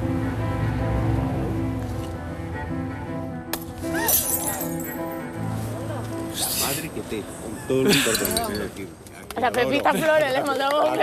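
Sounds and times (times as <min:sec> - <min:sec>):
background music: 0:00.0 - 0:11.0
light bulb popping and shattering: 0:03.5 - 0:05.0.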